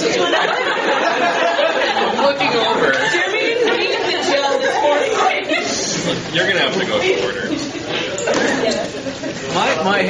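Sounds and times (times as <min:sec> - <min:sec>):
people laughing: 0:00.0 - 0:09.9.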